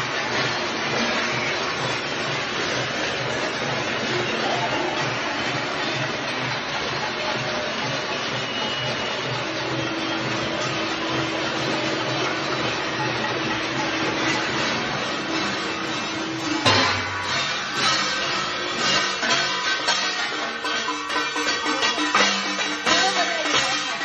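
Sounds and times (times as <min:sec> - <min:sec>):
beating steel plates: 0:00.0 - 0:24.0
bells ringing: 0:00.0 - 0:24.0
sudden loud bang: 0:16.4 - 0:19.4.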